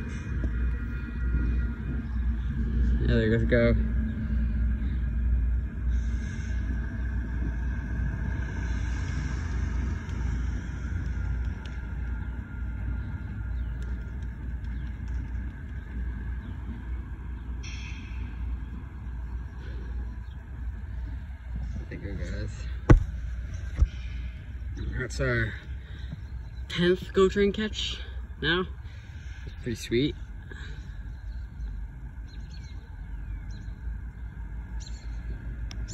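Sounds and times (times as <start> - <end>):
train rumbling: 0.0 - 35.9.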